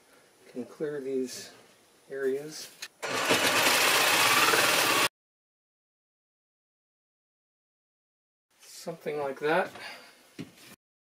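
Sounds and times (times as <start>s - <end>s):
power saw cutting wood: 3.0s - 5.1s.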